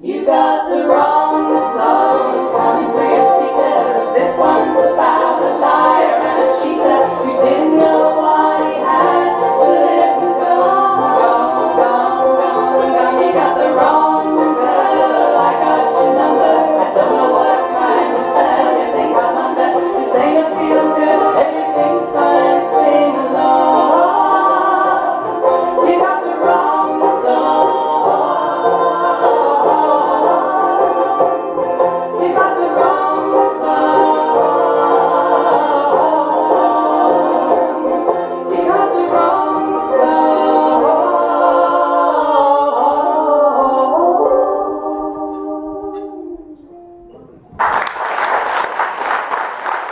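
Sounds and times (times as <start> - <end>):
women singing in harmony: 0.0 - 46.8
banjo: 0.0 - 47.5
acoustic guitar: 0.0 - 47.6
mandolin: 0.0 - 47.6.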